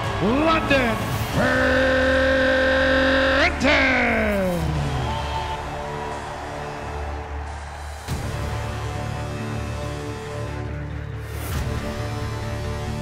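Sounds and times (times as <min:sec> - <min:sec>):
announcer calling over loudspeaker: 0:00.0 - 0:04.9.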